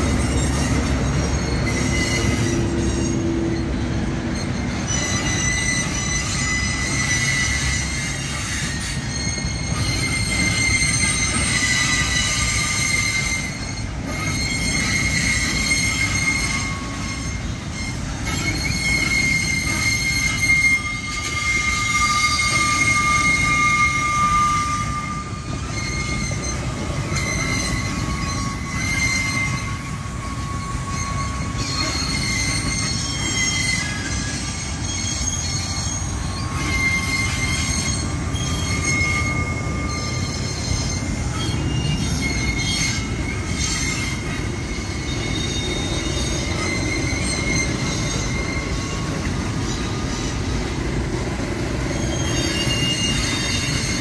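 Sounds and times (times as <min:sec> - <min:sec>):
freight train rumbling past: 0:00.0 - 0:54.0
wheels squealing on rails: 0:00.0 - 0:54.0.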